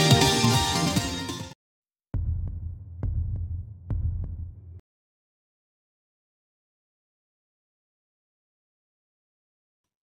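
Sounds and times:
heartbeat double thumps: 2.2s - 4.8s.

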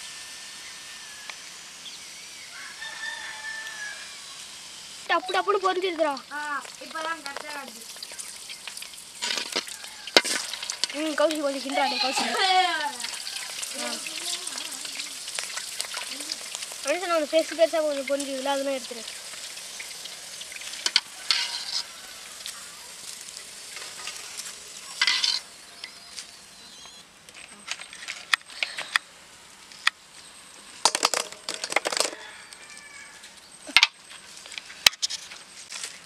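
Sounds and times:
food deep-frying in oil: 0.0s - 27.0s.

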